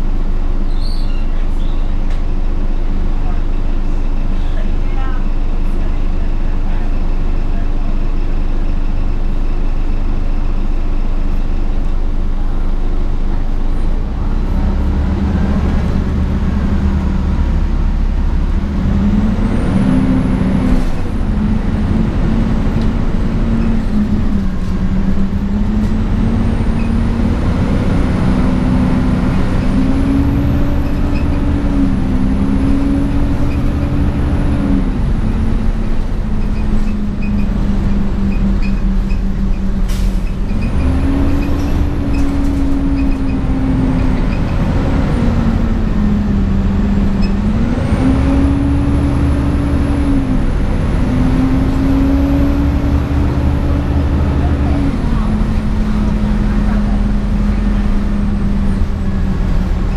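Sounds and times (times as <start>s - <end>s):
bus engine idling and revving: 0.0s - 59.9s.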